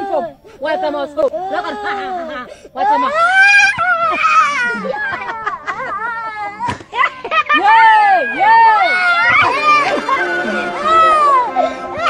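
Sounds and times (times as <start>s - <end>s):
child wailing: 0.0s - 6.8s, 7.5s - 12.0s.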